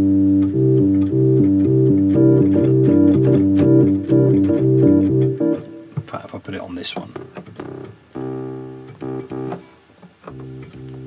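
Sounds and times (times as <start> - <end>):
electronic organ chords: 0.0 - 6.2, 7.1 - 11.0.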